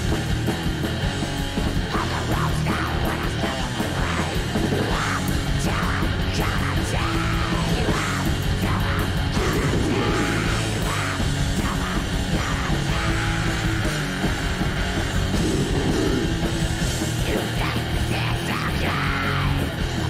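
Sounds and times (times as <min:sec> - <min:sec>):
death metal song: 0:00.0 - 0:20.0
screamed vocals: 0:01.9 - 0:16.4, 0:17.2 - 0:19.8.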